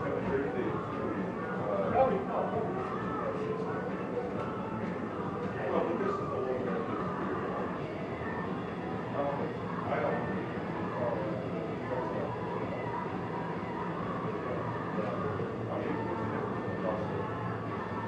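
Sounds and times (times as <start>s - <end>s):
voices murmuring: 0.0s - 18.0s.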